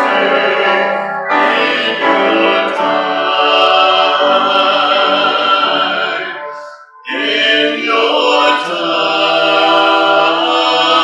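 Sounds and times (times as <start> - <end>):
group singing worship song: 0.0 - 11.0
instrumental accompaniment: 0.0 - 11.0.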